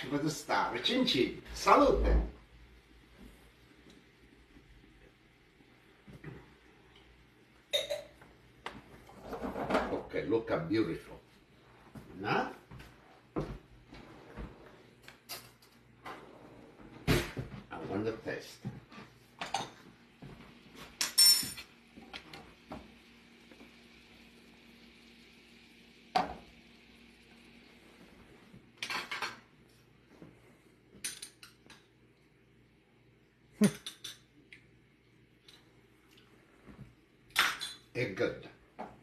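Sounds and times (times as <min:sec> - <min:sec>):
faint steady hiss: 0:00.0 - 0:39.0
metal utensils clinking on dishes: 0:21.0 - 0:21.7, 0:33.6 - 0:34.3.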